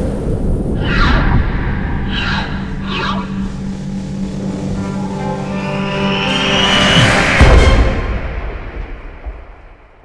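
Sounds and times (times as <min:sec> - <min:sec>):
low steady drone: 0:00.0 - 0:08.9
whooshes: 0:00.0 - 0:09.9.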